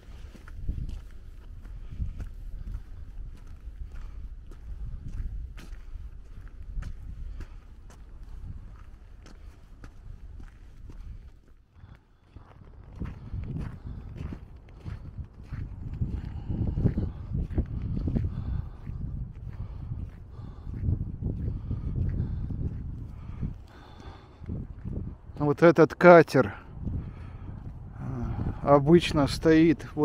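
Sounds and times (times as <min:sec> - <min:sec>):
wind rumble on microphone: 0:00.0 - 0:25.6, 0:26.4 - 0:30.0
footsteps crunching on frozen snow: 0:00.0 - 0:30.0.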